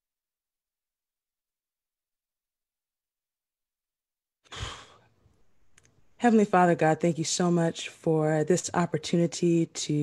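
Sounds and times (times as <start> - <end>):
breath into microphone: 4.5 - 5.1.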